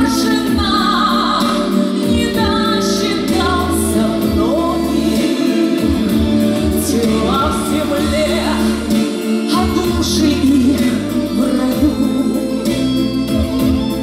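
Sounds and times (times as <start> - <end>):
woman singing into microphone: 0.0 - 13.0
bass line: 0.0 - 14.0
instrumental accompaniment: 0.0 - 14.0.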